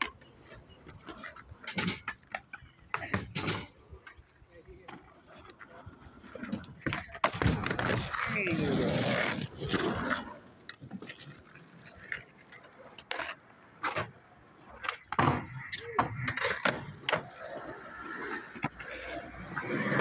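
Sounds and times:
voices: 0.0 - 10.2, 14.6 - 20.0
skateboard wheels rolling on concrete: 0.0 - 20.0
skateboards clacking on concrete: 0.0 - 20.0.

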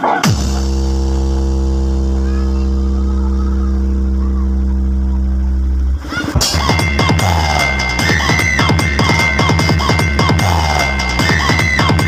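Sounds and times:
electronic dance beat: 0.0 - 12.0
deep bass note: 0.2 - 12.0.

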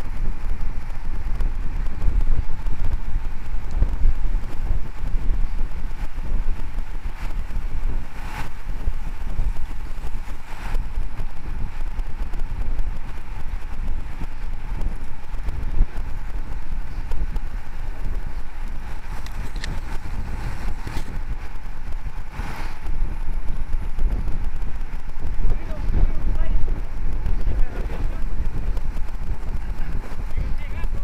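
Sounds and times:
low rumble of road noise: 0.0 - 31.0
wind buffeting microphone: 0.0 - 31.0.

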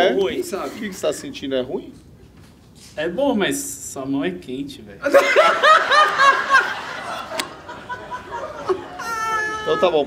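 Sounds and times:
person laughing: 7.4 - 10.0.

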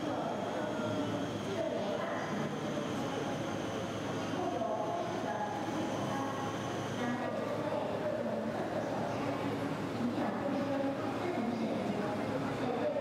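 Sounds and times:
constant hum and hiss: 0.0 - 13.0
distant people talking: 0.0 - 13.0.

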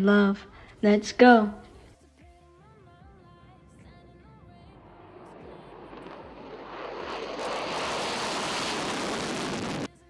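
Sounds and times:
jet fighter taking off: 4.6 - 9.9.

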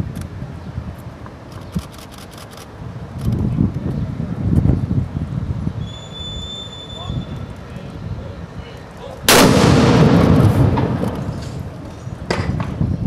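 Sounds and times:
cannon blast with echo: 9.3 - 11.7.

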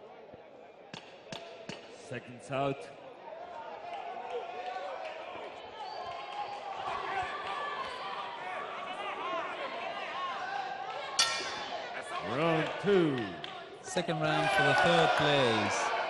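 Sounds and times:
crowd talking in a hall: 0.0 - 16.0
boxing ring bell strike: 11.2 - 11.8.

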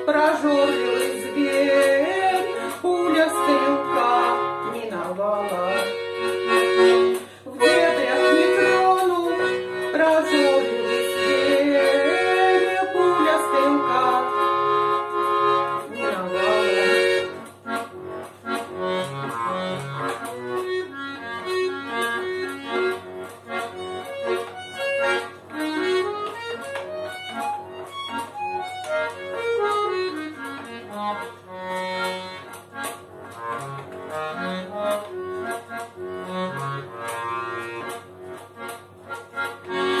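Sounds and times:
button accordion playing: 0.0 - 40.0.

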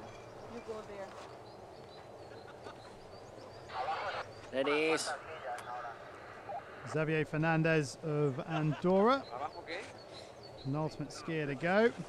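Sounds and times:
distant indistinct voices: 0.0 - 12.0
man speaking close to microphone: 10.6 - 12.0.

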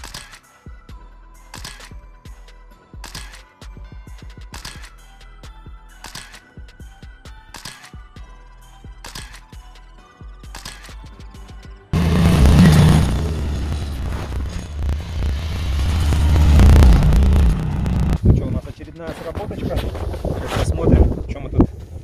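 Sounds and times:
background music: 0.0 - 14.4
snowmobile engine running: 12.0 - 18.3.

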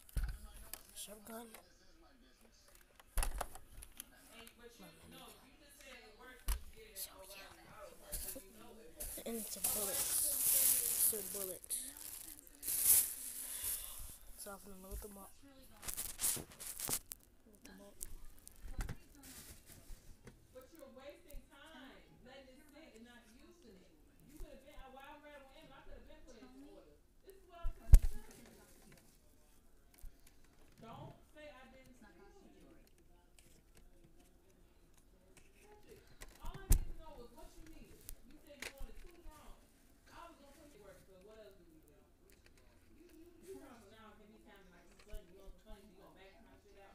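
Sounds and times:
faint low talking: 0.0 - 46.9
rustling handling noise: 8.0 - 17.3, 17.9 - 20.2.

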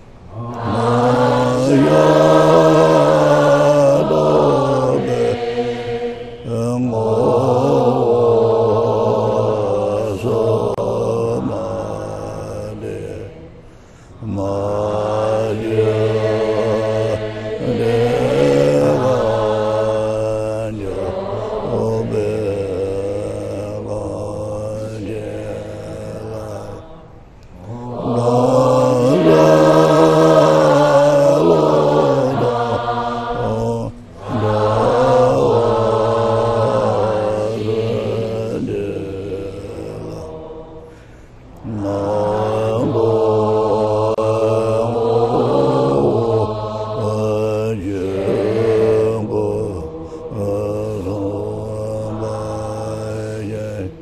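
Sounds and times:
assembly chanting a prayer: 0.0 - 54.0.

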